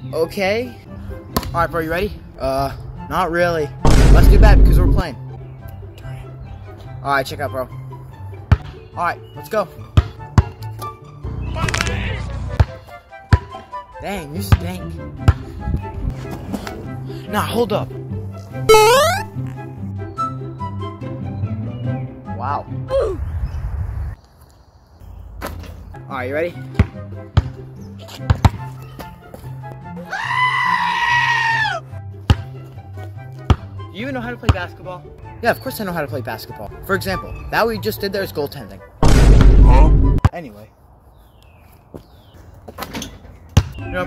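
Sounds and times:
background music with steady beat: 0:03.8 - 0:11.5, 0:12.5 - 0:22.8, 0:25.9 - 0:30.1, 0:31.8 - 0:37.8
basketball bouncing on asphalt: 0:10.0 - 0:10.6, 0:12.6 - 0:13.5, 0:26.8 - 0:29.4, 0:32.2 - 0:32.6, 0:33.4 - 0:33.8, 0:43.5 - 0:43.8.

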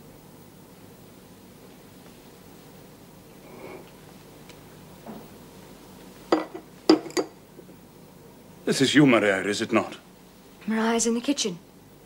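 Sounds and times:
drinking glass clinking: 0:06.3 - 0:07.3.

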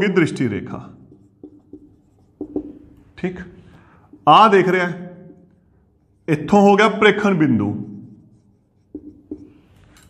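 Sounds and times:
marker drawing on whiteboard: 0:00.9 - 0:03.7, 0:04.5 - 0:10.0.

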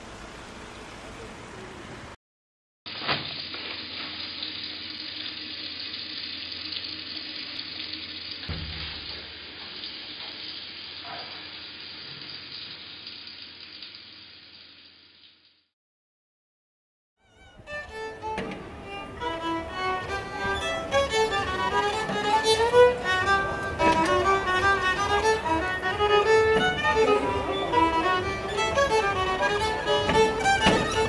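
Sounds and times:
tap water running into basin: 0:02.9 - 0:15.6, 0:17.9 - 0:31.0
low knock: 0:08.5 - 0:09.4, 0:19.9 - 0:31.0.

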